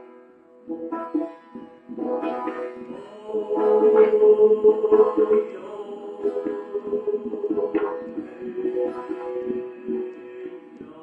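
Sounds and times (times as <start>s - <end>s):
plucked string accompaniment: 0.0s - 11.0s
man singing long note: 3.0s - 11.0s.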